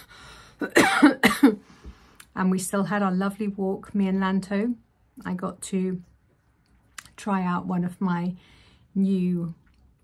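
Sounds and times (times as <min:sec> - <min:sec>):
woman coughing: 0:00.6 - 0:01.6.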